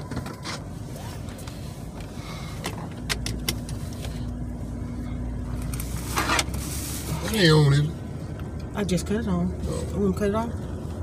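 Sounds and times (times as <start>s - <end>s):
car engine hum inside cabin: 0.0s - 11.0s.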